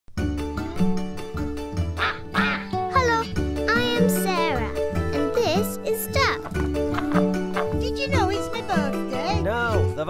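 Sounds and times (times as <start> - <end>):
cheerful children's theme music: 0.2 - 10.0
cartoon duck quacking: 2.0 - 2.8, 6.9 - 7.9.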